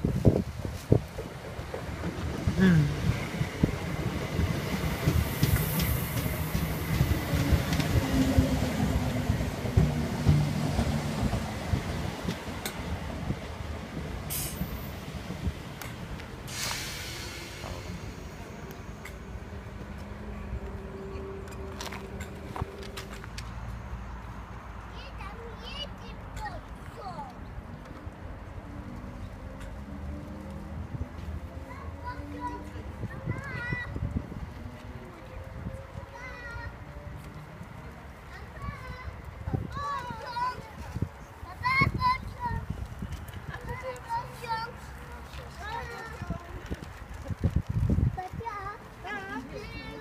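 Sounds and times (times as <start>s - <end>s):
wheels clicking on rails: 0.0s - 23.8s, 25.6s - 50.0s
train low rumble: 0.0s - 24.5s
child and family calling: 24.8s - 27.4s, 35.8s - 36.9s, 38.3s - 42.8s, 43.5s - 46.6s, 48.2s - 50.0s.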